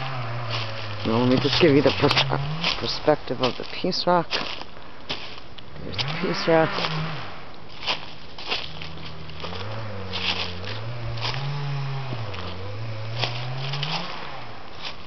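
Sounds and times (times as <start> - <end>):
low wavering hum: 0.0 - 3.3, 5.7 - 14.8
footsteps on leaf litter: 0.0 - 15.0.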